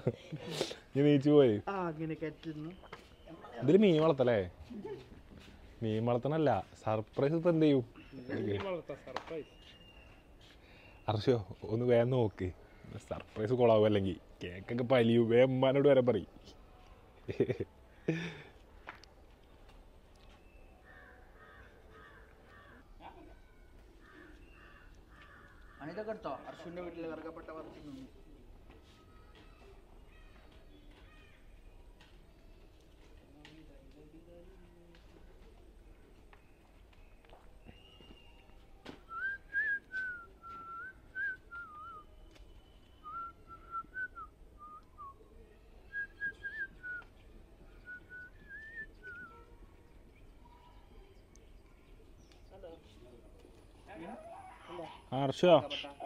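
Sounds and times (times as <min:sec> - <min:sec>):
faint crow cawing: 0:20.8 - 0:26.8
person whistling a tune: 0:39.1 - 0:42.0, 0:43.0 - 0:45.1.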